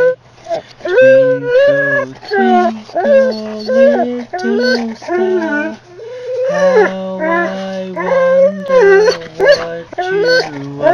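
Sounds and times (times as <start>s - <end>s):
dog howling: 0.8s - 10.9s
person singing: 1.0s - 5.8s.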